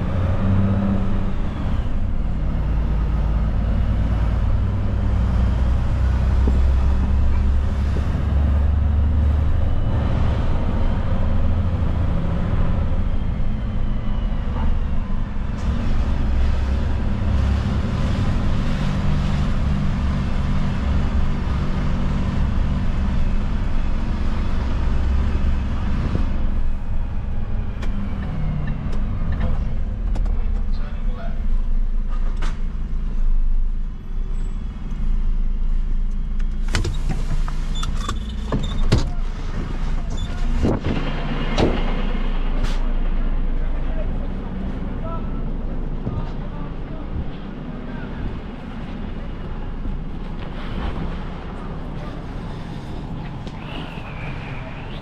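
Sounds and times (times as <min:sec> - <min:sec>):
truck engine rumble: 0:00.0 - 0:55.0.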